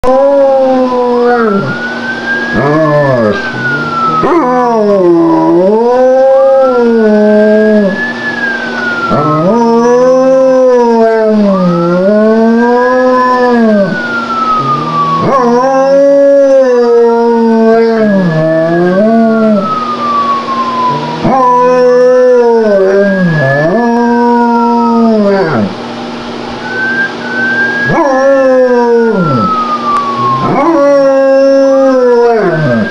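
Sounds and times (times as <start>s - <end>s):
dog howling: 0.0s - 1.8s, 2.5s - 8.1s, 9.1s - 25.8s, 27.8s - 32.9s
police siren wailing: 0.0s - 32.9s.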